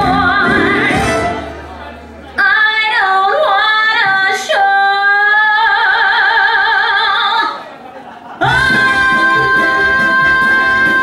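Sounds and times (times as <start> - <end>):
woman singing show tune: 0.0 - 1.5, 8.4 - 11.0.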